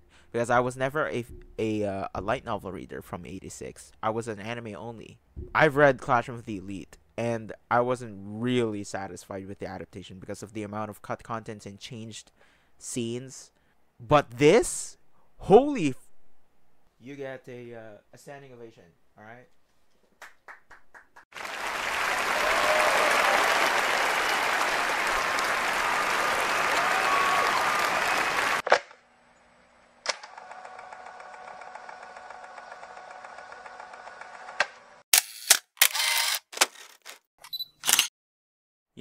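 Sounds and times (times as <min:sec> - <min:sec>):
crowd applause: 0:21.3 - 0:28.6.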